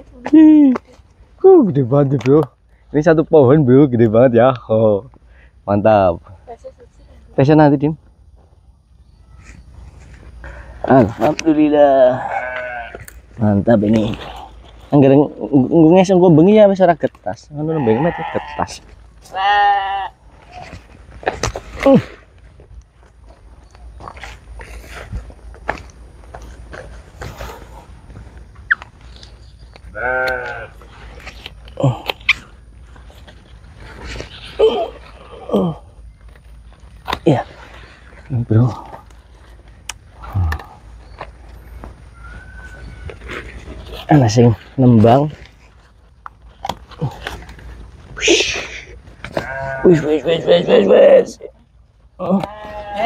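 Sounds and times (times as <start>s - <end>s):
stems snapping: 2.0s - 2.5s, 28.6s - 32.5s, 38.8s - 41.3s, 46.2s - 47.6s, 52.2s - 52.8s
leaves rustling: 8.4s - 53.0s
animal call: 40.2s - 44.0s
faint thin whistle: 42.1s - 43.2s.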